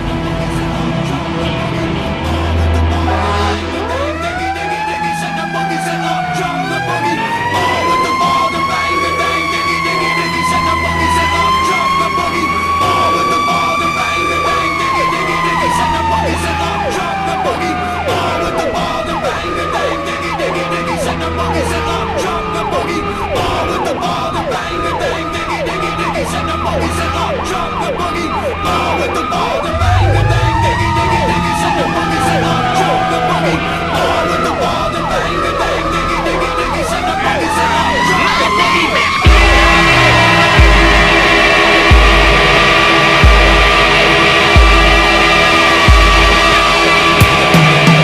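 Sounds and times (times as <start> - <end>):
low rumble of truck: 0.0 - 4.2, 20.9 - 37.5
fire truck siren wailing: 0.0 - 48.0.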